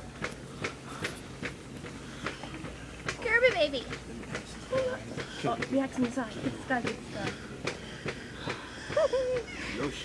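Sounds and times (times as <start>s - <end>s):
faint voices: 0.0s - 10.0s
low store hum: 0.0s - 10.0s.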